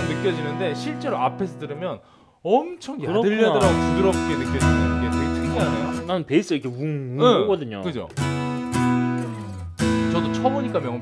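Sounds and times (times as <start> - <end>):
acoustic guitar strummed chords: 0.0 - 1.0, 3.6 - 6.1, 8.2 - 11.0.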